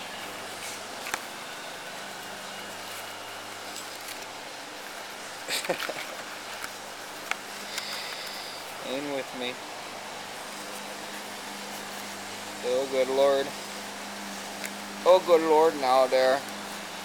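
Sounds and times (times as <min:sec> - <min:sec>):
steady low hum: 0:00.0 - 0:17.0
paper envelope clicks and rustles: 0:00.6 - 0:01.3, 0:02.7 - 0:08.3
person laughing: 0:05.5 - 0:06.2.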